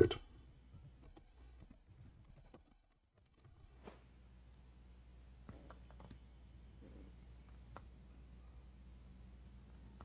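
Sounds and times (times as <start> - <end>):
computer keys clicking: 1.0 - 3.7, 5.7 - 6.2.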